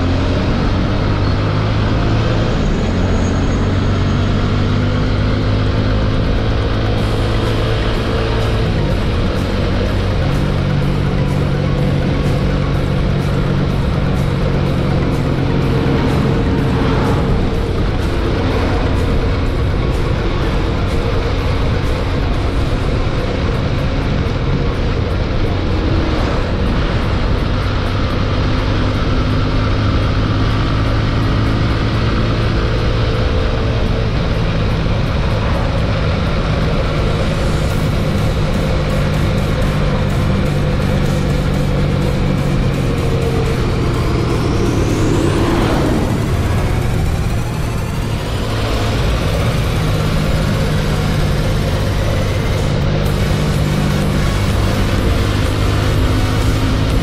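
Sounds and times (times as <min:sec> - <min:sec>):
background music with held notes: 0:00.0 - 0:57.0
motorcycle riding noise: 0:00.0 - 0:57.0.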